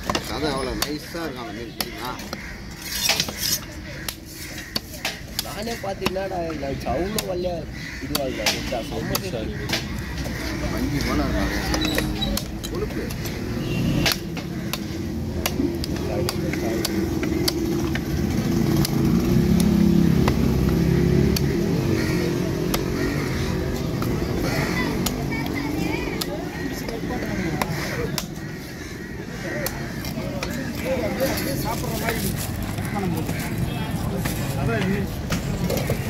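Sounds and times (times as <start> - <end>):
people talking: 0.1 - 2.4, 10.3 - 14.0, 15.5 - 17.1, 24.1 - 28.3, 29.2 - 36.0
vehicle engine humming: 4.2 - 36.0
cleaver chopping on wooden block: 11.6 - 28.4.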